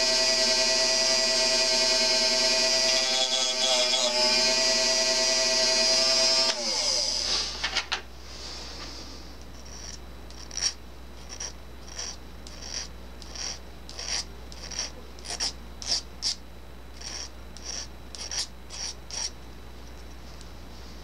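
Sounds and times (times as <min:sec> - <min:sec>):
hand file rasping on metal: 0:09.7 - 0:16.4, 0:17.0 - 0:19.3.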